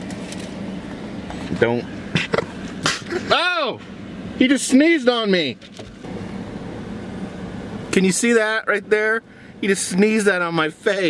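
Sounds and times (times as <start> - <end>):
car cabin background noise: 0.0 - 11.0.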